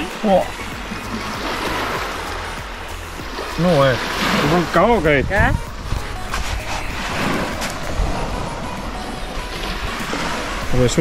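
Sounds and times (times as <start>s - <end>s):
surf: 0.0s - 11.0s
wind on microphone: 0.7s - 11.0s.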